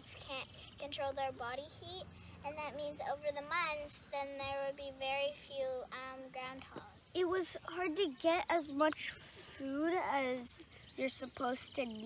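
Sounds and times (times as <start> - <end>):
girl talking: 0.0 - 12.0.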